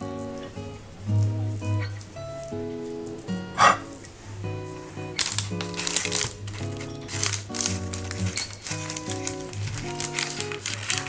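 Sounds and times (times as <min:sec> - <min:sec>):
light instrumental music: 0:00.0 - 0:11.0
dough pressed on parchment paper: 0:05.0 - 0:11.0.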